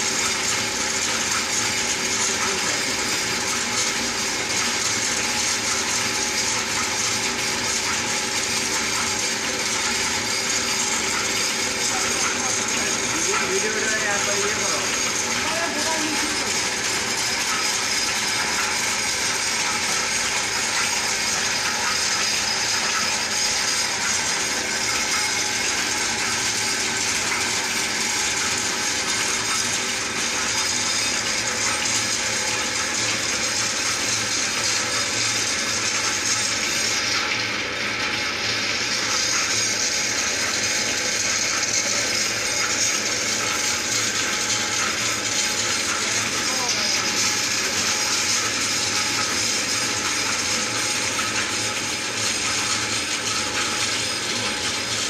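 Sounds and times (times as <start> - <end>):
lathe machine drone: 0.0 - 55.0.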